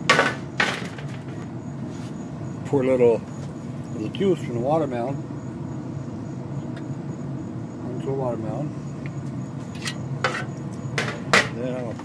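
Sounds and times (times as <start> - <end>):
handling noises: 0.0 - 2.2
steady low hum: 0.0 - 12.0.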